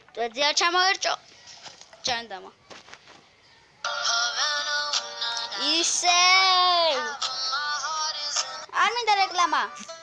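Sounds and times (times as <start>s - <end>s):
music with electronically altered singing: 3.8s - 10.0s.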